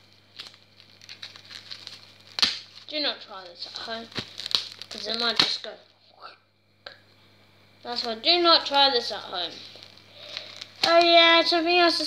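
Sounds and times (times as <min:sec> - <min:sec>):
plastic packaging crinkling: 0:00.0 - 0:05.8, 0:07.9 - 0:12.0
low steady hum: 0:00.0 - 0:12.0.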